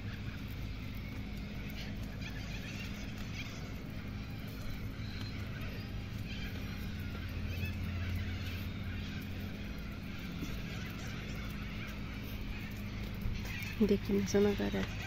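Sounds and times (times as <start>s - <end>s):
low outdoor hum: 0.0s - 15.0s.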